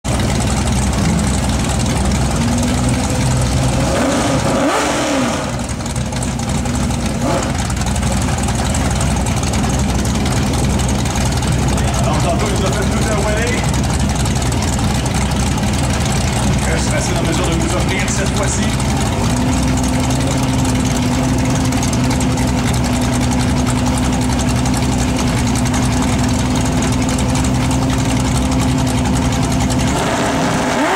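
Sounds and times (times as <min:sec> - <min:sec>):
car engine idling and revving: 0:00.0 - 0:30.9.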